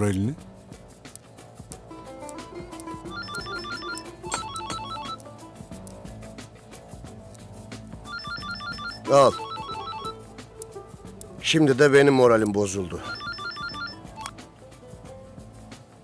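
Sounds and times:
background music: 0.0s - 16.0s
phone ringtone trilling beeps: 3.1s - 5.2s, 8.1s - 10.2s, 13.0s - 14.3s.

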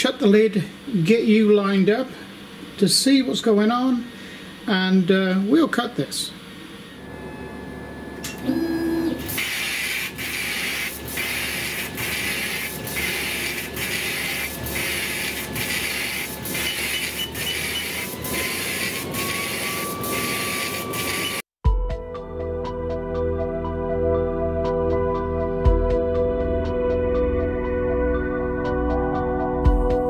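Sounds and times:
laser engraver hiss: 9.2s - 21.5s.

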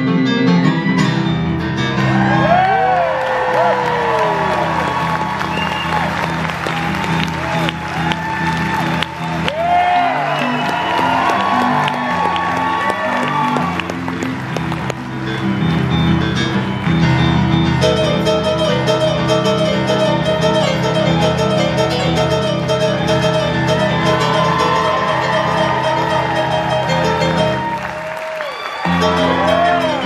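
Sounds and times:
audience cheering and clapping: 2.0s - 18.0s, 22.5s - 30.0s
live rock band playing: 14.0s - 27.9s, 28.8s - 30.0s.

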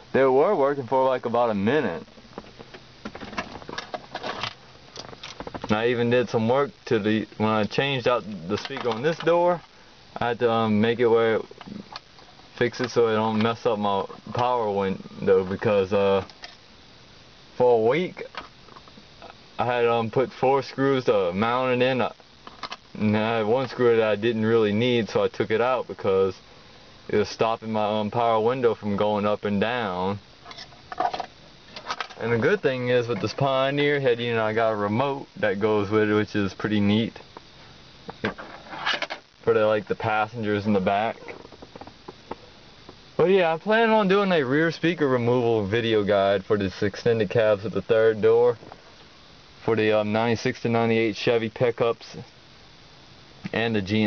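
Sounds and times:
man speaking: 0.0s - 2.1s, 5.6s - 12.0s, 12.6s - 16.3s, 17.6s - 18.4s, 19.2s - 22.2s, 23.0s - 26.4s, 27.1s - 30.2s, 32.2s - 37.3s, 39.4s - 41.4s, 43.2s - 48.6s, 49.6s - 52.3s, 53.5s - 54.0s.

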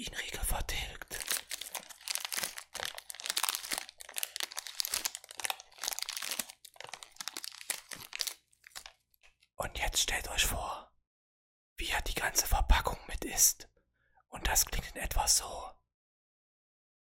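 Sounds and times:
wrapper crinkling: 0.9s - 9.4s.

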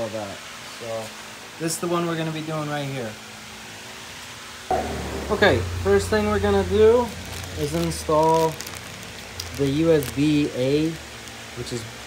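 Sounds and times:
low hum: 4.7s - 9.0s
person speaking: 4.7s - 11.0s.

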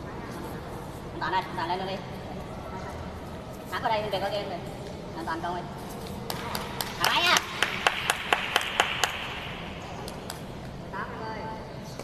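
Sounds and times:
hand claps: 6.2s - 10.5s.

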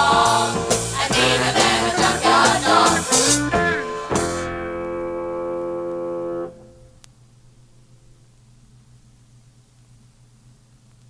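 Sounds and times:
person singing: 0.0s - 4.4s
held final chord: 3.5s - 7.0s.

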